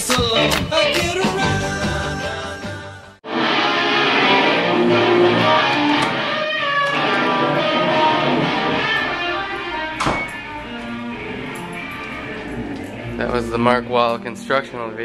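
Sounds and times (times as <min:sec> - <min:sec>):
solo guitar notes: 0:03.3 - 0:15.0.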